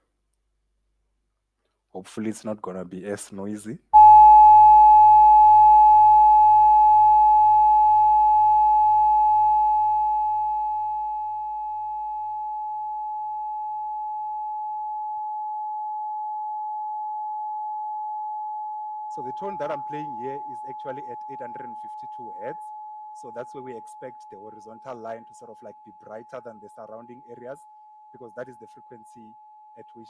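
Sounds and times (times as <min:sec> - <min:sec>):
pure sine tone: 0:04.0 - 0:30.0.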